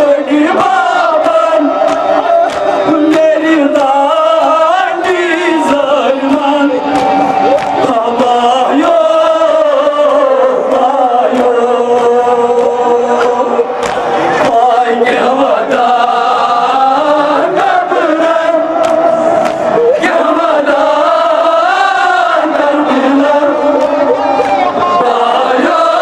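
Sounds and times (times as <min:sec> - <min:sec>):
men chanting into microphones: 0:00.0 - 0:26.0.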